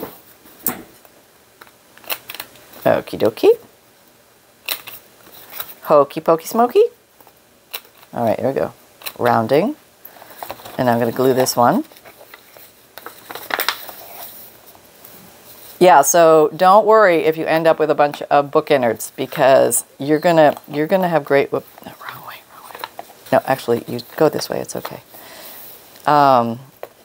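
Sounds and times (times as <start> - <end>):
book pages rustling: 10.2 - 14.8.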